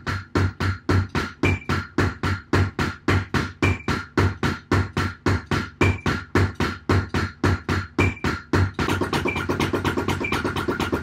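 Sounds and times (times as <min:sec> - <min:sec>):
double kick drum thumps: 0:00.0 - 0:11.0.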